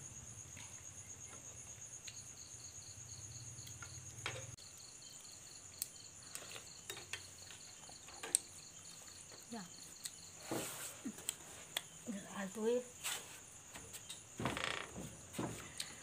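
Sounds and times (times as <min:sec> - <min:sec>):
crickets chirping: 0:00.0 - 0:16.0.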